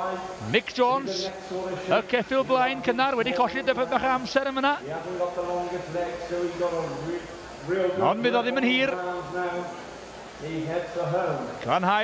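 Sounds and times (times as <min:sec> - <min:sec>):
man speaking: 0:00.0 - 0:09.8, 0:10.4 - 0:12.0.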